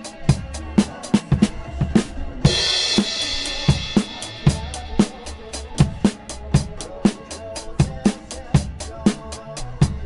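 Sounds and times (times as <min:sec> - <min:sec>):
backing track: 0:00.0 - 0:10.0
bass drum and snare hits: 0:00.2 - 0:06.9.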